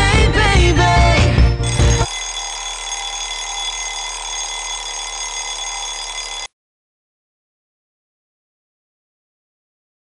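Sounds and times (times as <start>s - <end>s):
alarm clock ringing: 1.6s - 6.5s.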